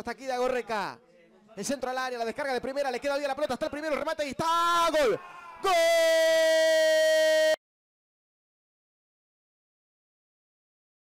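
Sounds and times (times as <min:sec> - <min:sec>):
commentator shouting goal: 0:03.7 - 0:07.6.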